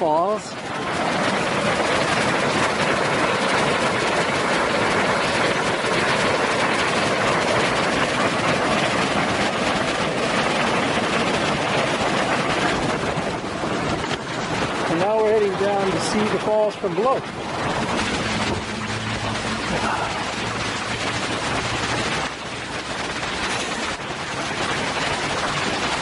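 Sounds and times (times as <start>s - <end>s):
waterfall rushing water: 12.4s - 26.0s.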